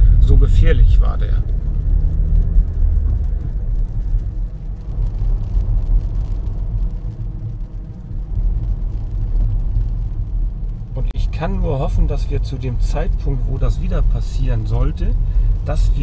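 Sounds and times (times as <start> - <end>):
car driving on wet road: 0.0 - 16.0.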